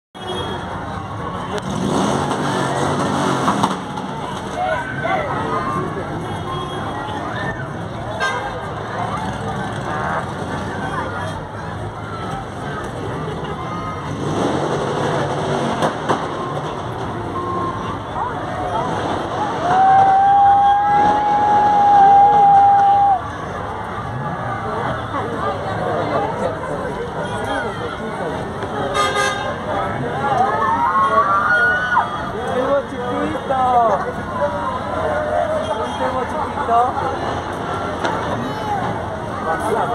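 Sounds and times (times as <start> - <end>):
crowd chatter: 0.1 - 39.9.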